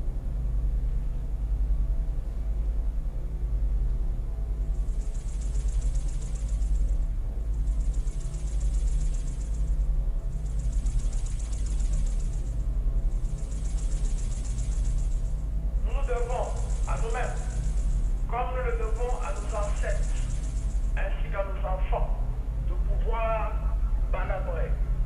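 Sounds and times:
low rumble: 0.0s - 24.2s
high buzzing hiss: 4.7s - 22.2s.

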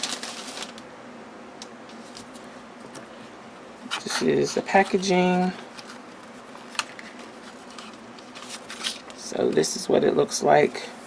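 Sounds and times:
paper rustling: 0.0s - 0.8s, 3.8s - 9.2s.

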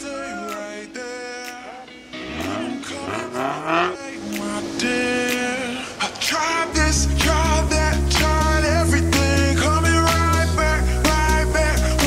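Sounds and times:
background music: 0.0s - 12.0s
off-road engine revving: 2.2s - 12.0s.

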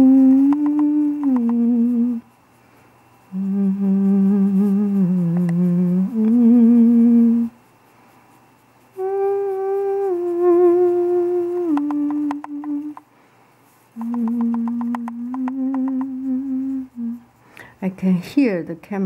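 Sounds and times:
woman humming: 0.0s - 2.3s, 3.3s - 7.6s, 9.0s - 13.0s, 14.0s - 17.3s.

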